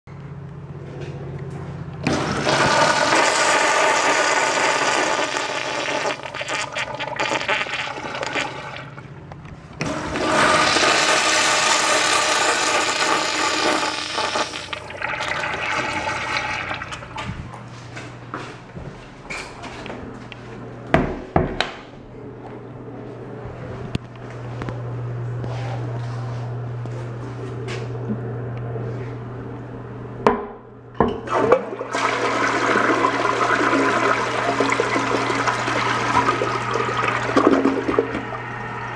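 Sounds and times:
urinals flushing: 2.0 - 17.7, 31.1 - 38.9.

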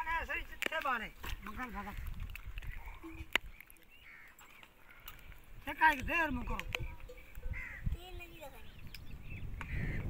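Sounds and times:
crows cawing: 3.9 - 5.4, 7.4 - 8.0, 9.6 - 10.0.

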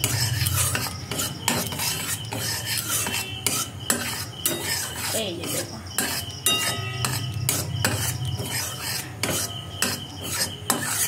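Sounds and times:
metal spoon scraping a pan: 0.0 - 11.0.

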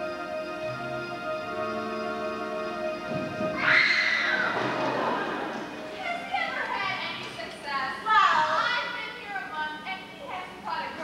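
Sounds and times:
held musical chord: 0.0 - 3.6
loud yell: 3.6 - 4.7.

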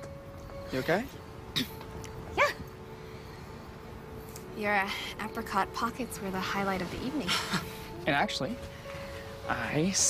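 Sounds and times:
faint steady background tone: 0.0 - 10.0.

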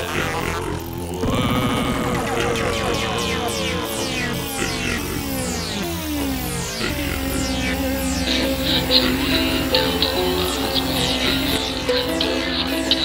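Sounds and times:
low bass drone: 0.8 - 13.0
pulsing high tone: 1.2 - 13.0
synthesizer pitch sweeps: 1.2 - 13.0.

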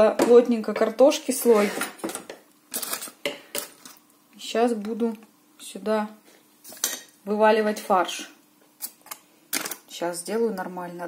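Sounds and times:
cookware and utensils clinking: 6.7 - 7.2.

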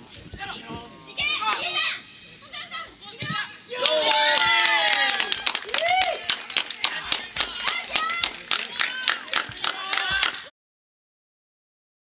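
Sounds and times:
crowd sustained shouting: 3.7 - 10.5.

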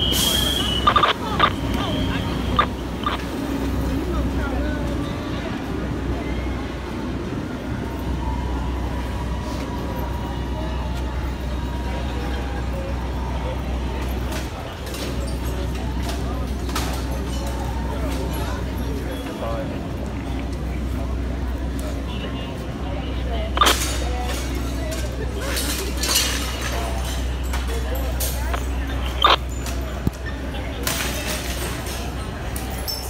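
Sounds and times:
fire engine drone: 0.0 - 33.0
indistinct voices: 0.0 - 33.0.

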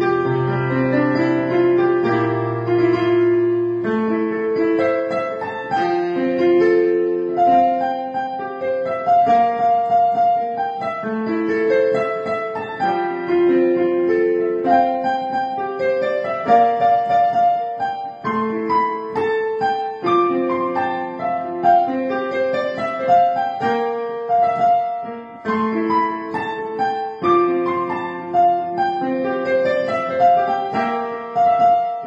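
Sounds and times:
digital piano melody: 0.0 - 32.0.

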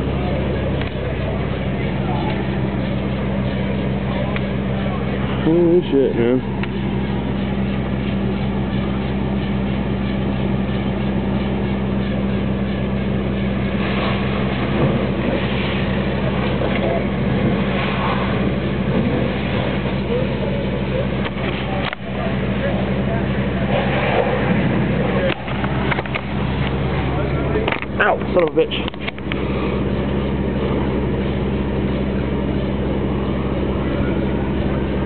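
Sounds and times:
engine idling hum: 0.0 - 35.0.

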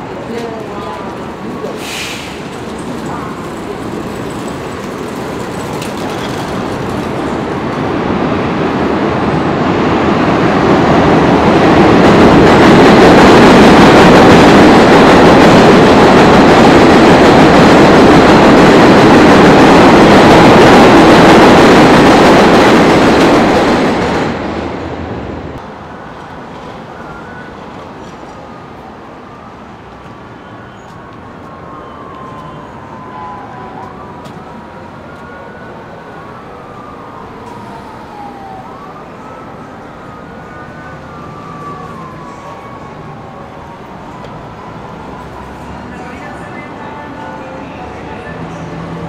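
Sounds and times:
elevated train rumbling overhead: 0.0 - 49.0.

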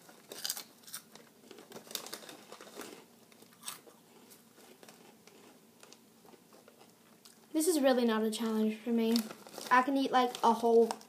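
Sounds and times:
snack bag crinkling: 0.0 - 7.5, 9.0 - 11.0.

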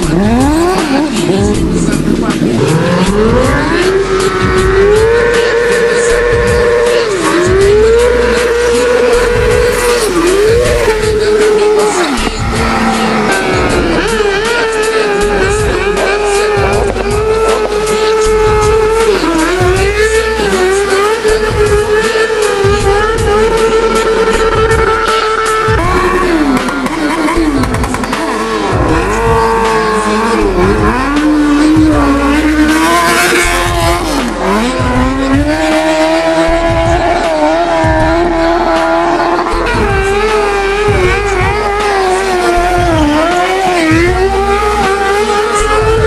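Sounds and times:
motorcycle engine at high revs: 0.0 - 46.0.

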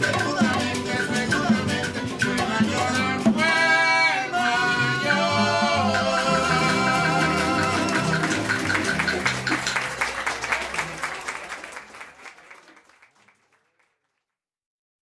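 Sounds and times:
son band with tres and bongo: 0.0 - 11.8.

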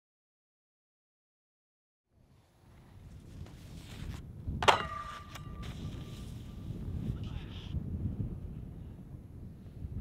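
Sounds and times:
snowboard clanking on metal rail: 4.6 - 5.9.

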